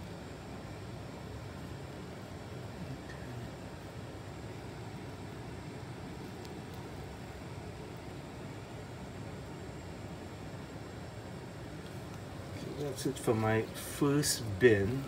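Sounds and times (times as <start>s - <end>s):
low background noise: 0.0s - 15.0s.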